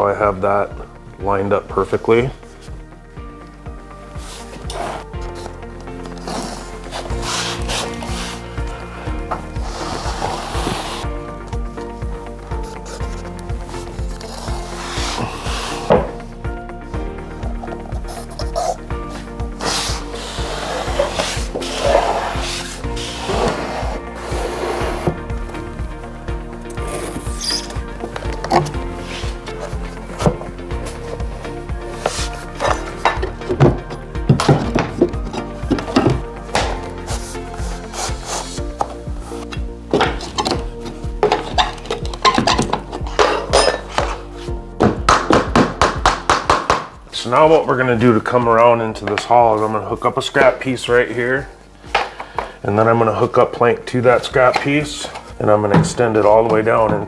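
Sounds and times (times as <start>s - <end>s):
background music: 0.0s - 57.0s
planks rubbing and knocking: 27.0s - 31.4s, 32.0s - 37.3s, 38.7s - 47.0s.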